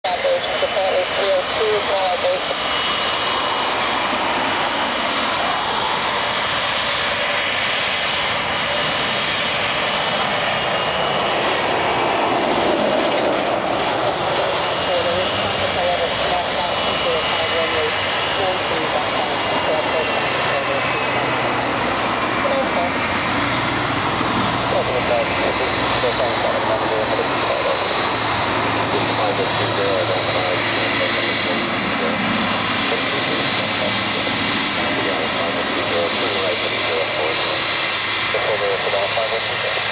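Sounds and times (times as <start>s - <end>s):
jet engines whining at taxi power: 0.0s - 39.9s.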